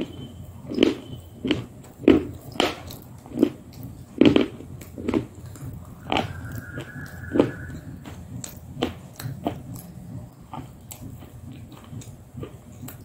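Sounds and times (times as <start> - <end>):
wet chewing and lip smacking: 8.4 - 13.0.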